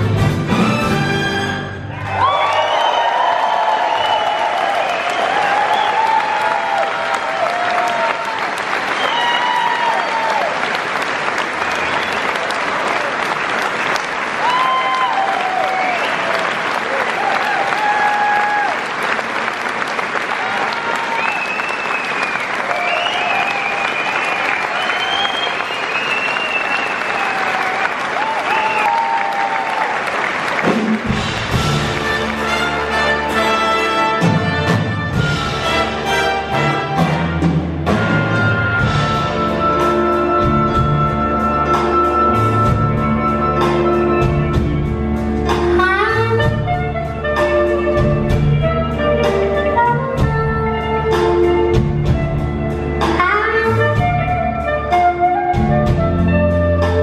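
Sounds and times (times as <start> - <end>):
big band playing: 0.0 - 57.0
audience cheering: 0.6 - 39.1
audience applauding: 1.6 - 39.1.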